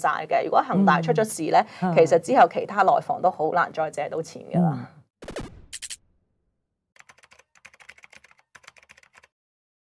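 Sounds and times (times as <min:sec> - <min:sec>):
faint keyboard typing: 0:07.0 - 0:09.4.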